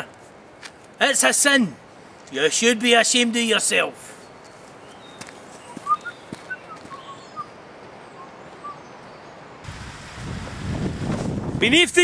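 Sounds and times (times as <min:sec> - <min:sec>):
faint bird chirps: 0:04.1 - 0:09.6
wind rumbling on microphone: 0:09.6 - 0:12.0.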